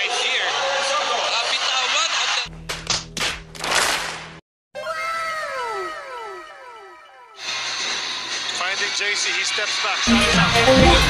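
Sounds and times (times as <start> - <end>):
echoing tones sliding down: 4.8 - 8.2.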